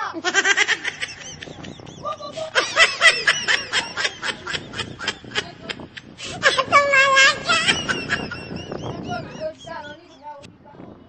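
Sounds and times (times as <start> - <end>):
high-pitched laughter: 0.0 - 10.3.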